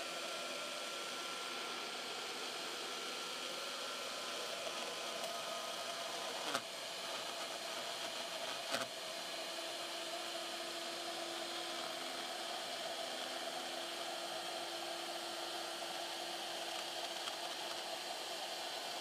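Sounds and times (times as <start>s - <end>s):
router spindle cutting wood: 0.1s - 19.0s.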